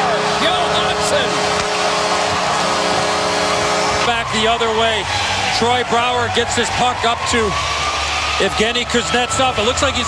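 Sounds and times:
goal horn: 0.0 - 4.2
crowd cheering: 0.0 - 10.0.

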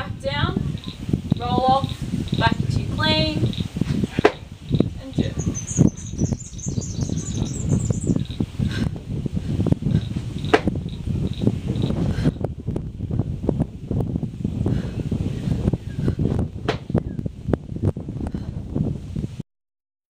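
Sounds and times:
low rumbling outdoor noise: 0.0 - 19.4
bird chirping trill: 4.4 - 8.5.

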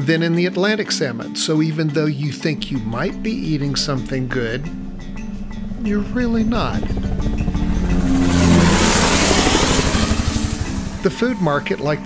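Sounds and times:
background music: 0.0 - 12.0
helicopter flying past: 2.6 - 12.0.

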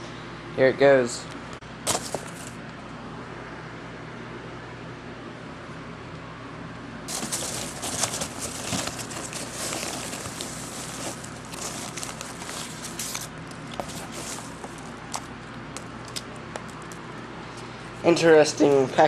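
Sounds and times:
packing peanuts rustling: 7.1 - 17.2.

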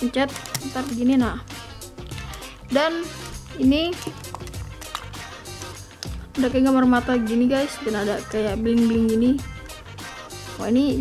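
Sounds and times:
music with low held tones: 0.0 - 11.0.

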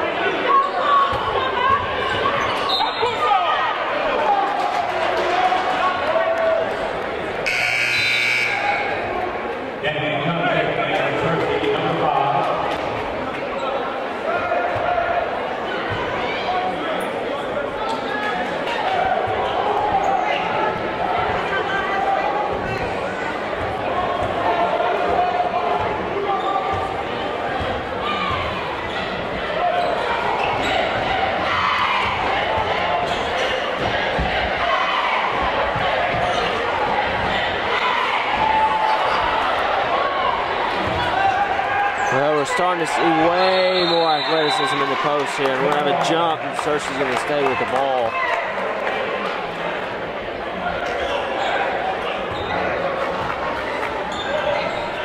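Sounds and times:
crowd chatter: 0.0 - 55.0
scoreboard horn: 7.4 - 8.9.

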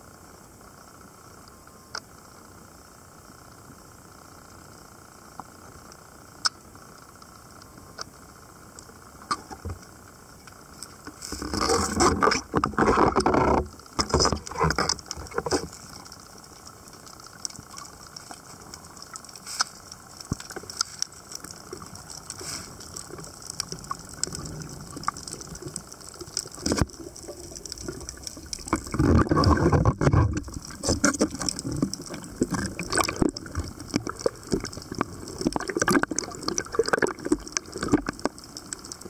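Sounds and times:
faint clicks: 1.4 - 2.1, 5.4 - 11.6, 12.6 - 39.0
underwater rushing and bubbling: 6.7 - 39.0.

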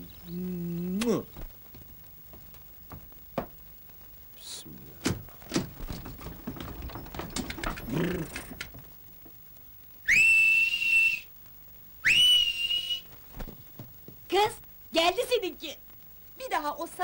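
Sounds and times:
clattering and knocks: 5.0 - 9.4
loud finger whistles: 10.0 - 11.3, 12.0 - 13.1.

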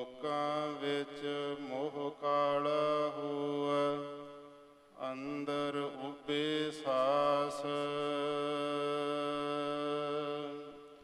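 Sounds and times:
man chanting melodically: 0.0 - 4.4, 5.0 - 11.0.

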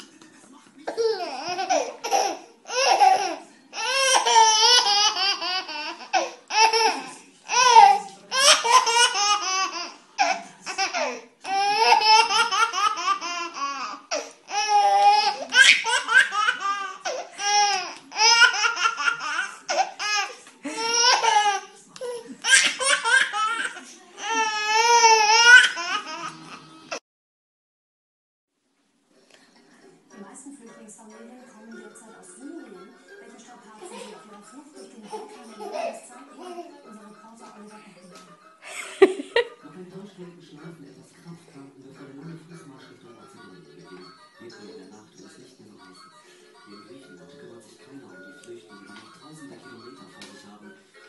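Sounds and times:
baby laughing: 0.8 - 27.0, 35.0 - 36.7.

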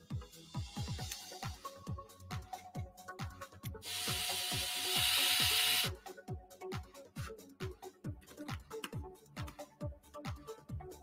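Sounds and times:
electronic music with kick drum: 0.0 - 11.0
electric screwdriver driving screw: 3.8 - 5.9.

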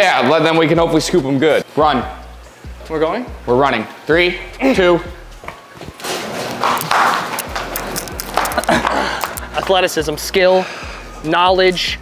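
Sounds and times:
bare feet running on concrete: 6.4 - 9.7.

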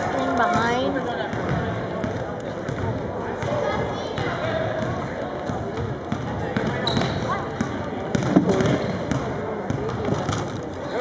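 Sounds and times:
people talking: 0.0 - 11.0
basketball bouncing on wooden floor: 5.5 - 10.4.

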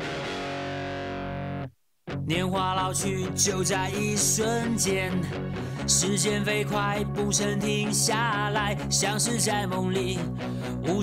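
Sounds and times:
distorted electric guitar chord: 0.0 - 1.7.

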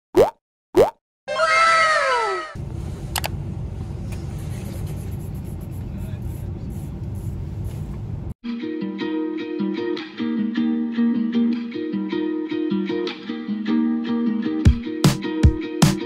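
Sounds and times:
rising bloop plops: 0.2 - 1.0
low rumble inside a bus: 1.5 - 8.4.

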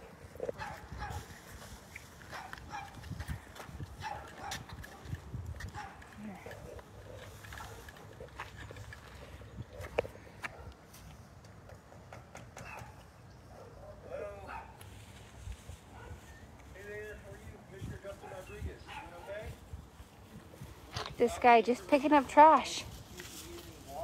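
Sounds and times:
footsteps on concrete: 1.5 - 11.6.

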